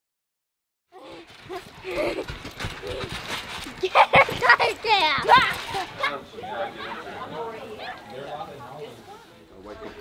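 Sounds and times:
children shouting and squealing: 1.0s - 8.1s.

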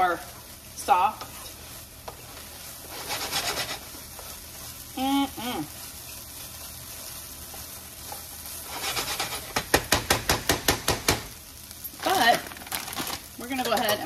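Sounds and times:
food sizzling in a frying pan: 0.0s - 14.0s
wooden spoon tapping a pan: 9.5s - 11.3s.

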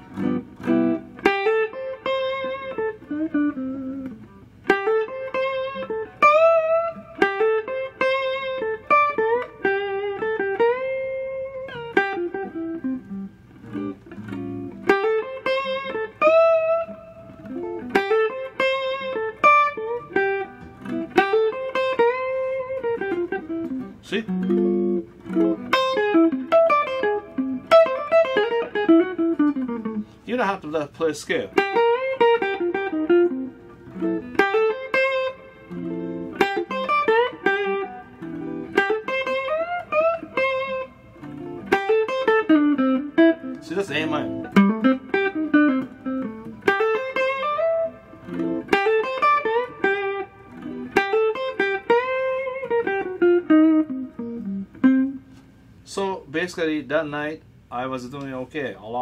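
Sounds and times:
electric guitar single-note phrases: 0.0s - 55.2s.

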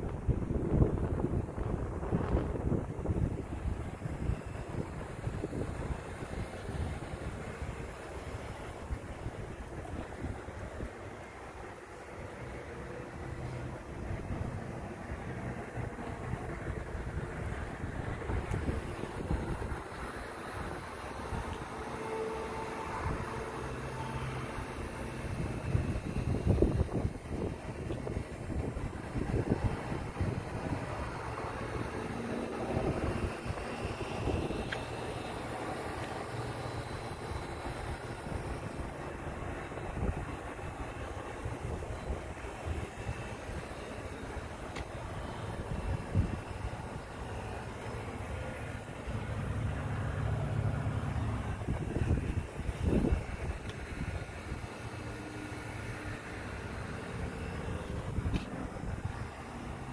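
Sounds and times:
vehicle engine drone: 0.0s - 59.9s.

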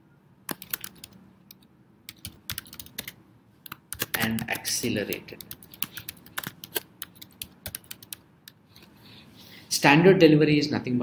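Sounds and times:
computer keyboard typing: 0.5s - 8.6s.

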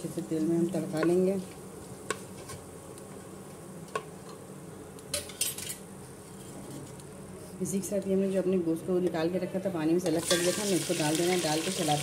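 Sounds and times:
spices sizzling in oil: 10.1s - 12.0s.

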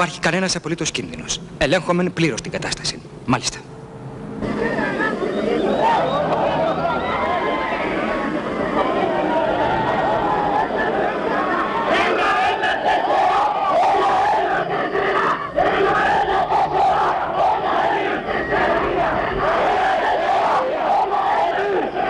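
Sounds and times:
crowd of protesters shouting: 4.4s - 22.0s.

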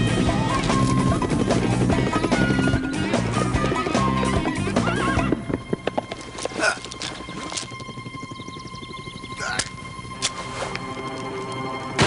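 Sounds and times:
horse hooves clopping: 0.0s - 12.0s
music: 0.0s - 12.0s
horse whinny: 9.3s - 9.8s.

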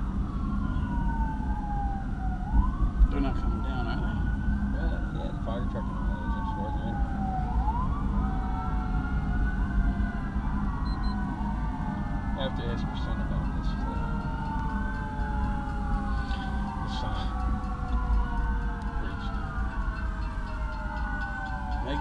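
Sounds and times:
police sirens wailing: 0.0s - 22.0s
road and engine rumble: 0.0s - 22.0s.

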